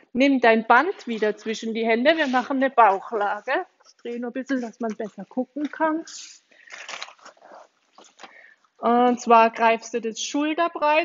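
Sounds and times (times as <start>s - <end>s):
rubber band rustling and crinkling: 0.9s - 9.3s.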